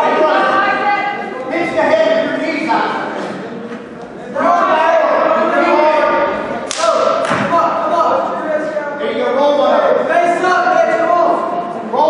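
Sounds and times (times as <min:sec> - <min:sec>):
voices shouting in a hall: 0:00.0 - 0:12.0.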